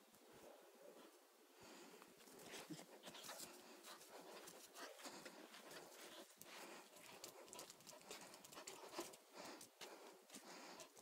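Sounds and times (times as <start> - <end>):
puppy claws clicking on tile: 7.0 - 9.2.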